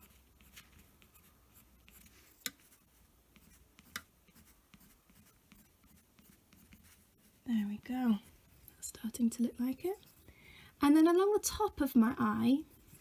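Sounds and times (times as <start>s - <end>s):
pencil scratching on paper: 0.0s - 10.3s, 12.2s - 13.0s.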